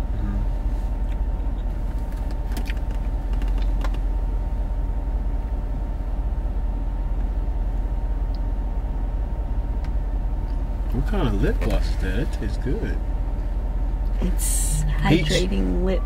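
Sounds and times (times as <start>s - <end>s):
car engine idling: 0.0s - 16.0s
faint steady hum: 0.0s - 16.0s.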